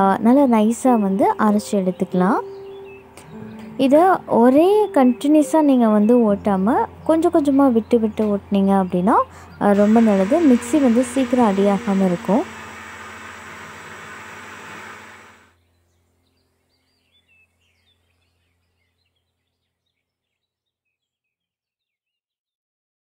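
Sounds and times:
woman talking: 0:00.0 - 0:02.5, 0:03.8 - 0:12.5
electric mixer grinder running: 0:09.7 - 0:15.6.

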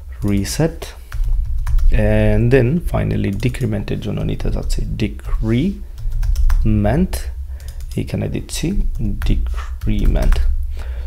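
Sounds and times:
man speaking: 0:00.2 - 0:01.0, 0:01.8 - 0:05.8, 0:06.6 - 0:10.5
computer keyboard typing: 0:00.2 - 0:10.6.

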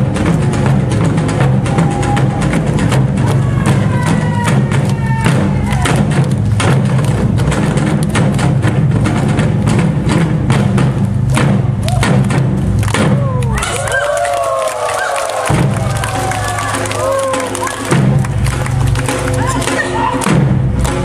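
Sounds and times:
drum ensemble drumming: 0:00.0 - 0:21.0
people shouting: 0:01.5 - 0:06.0, 0:13.1 - 0:18.2, 0:18.8 - 0:20.3.

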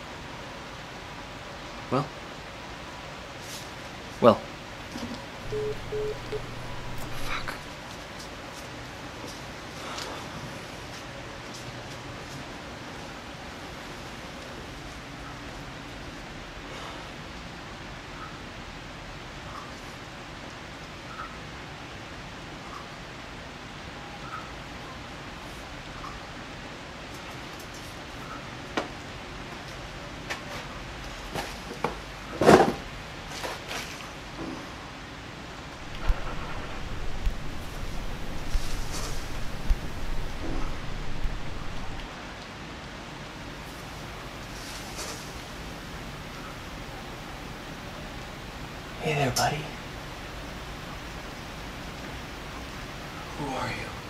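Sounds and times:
steady hiss: 0:00.0 - 0:17.9, 0:35.5 - 0:54.0
rain-like rushing noise: 0:00.0 - 0:54.0
faint low hum: 0:05.4 - 0:07.8, 0:35.7 - 0:42.3
low thuds: 0:35.8 - 0:42.1.

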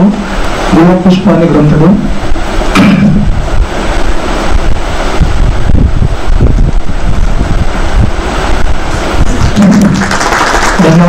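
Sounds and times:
audience applauding: 0:08.9 - 0:11.0.

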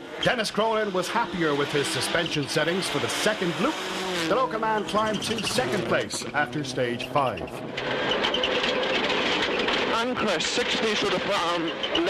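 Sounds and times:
car engine under load: 0:00.0 - 0:12.0
road and tyre noise: 0:00.0 - 0:12.0.

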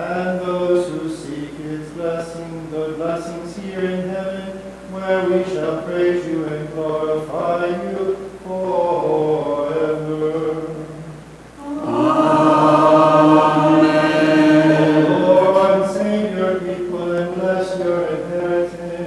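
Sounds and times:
man chanting: 0:00.0 - 0:19.0.

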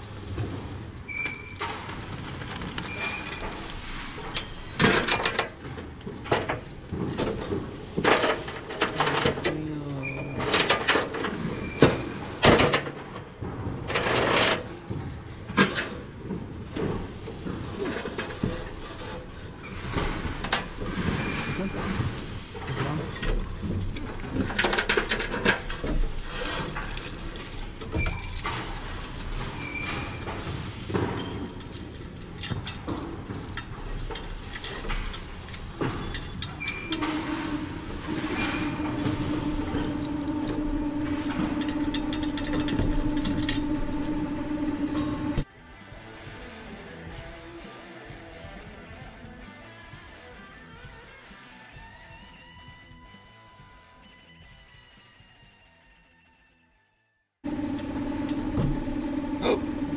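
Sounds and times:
metal chains clinking: 0:00.0 - 0:13.0, 0:13.9 - 0:16.0, 0:22.6 - 0:45.4
steady machine hum: 0:37.0 - 0:45.4, 0:57.5 - 0:59.9.

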